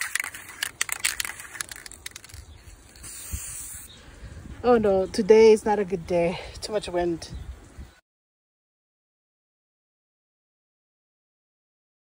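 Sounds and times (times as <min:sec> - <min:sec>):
crackling clicks: 0:00.0 - 0:03.3
aerosol can spraying: 0:00.0 - 0:03.9
wind on microphone: 0:02.6 - 0:08.0.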